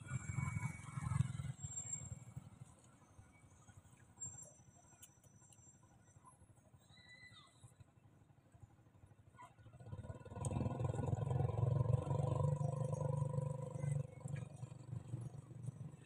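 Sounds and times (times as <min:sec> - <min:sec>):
vehicle engine passing by: 0:09.7 - 0:16.0.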